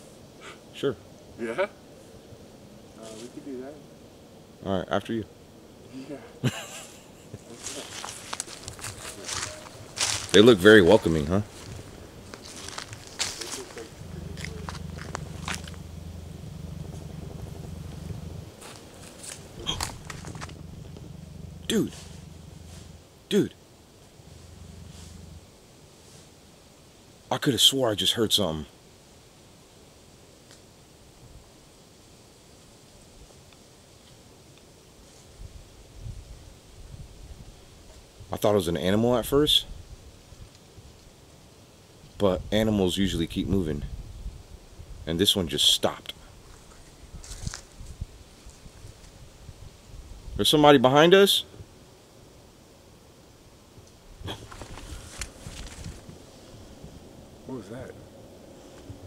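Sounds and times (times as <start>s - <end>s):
footsteps crunching dry leaves: 7.4s - 23.0s, 46.4s - 48.7s, 54.3s - 56.1s
low steady rumble: 8.7s - 23.2s, 24.0s - 25.7s.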